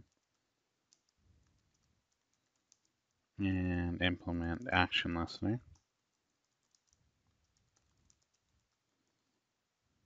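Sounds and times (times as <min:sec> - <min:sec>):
faint keyboard typing: 0:00.0 - 0:09.6.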